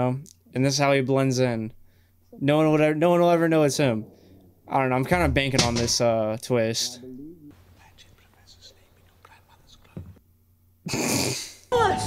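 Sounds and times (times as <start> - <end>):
group whispering: 3.3 - 5.2, 6.0 - 10.2.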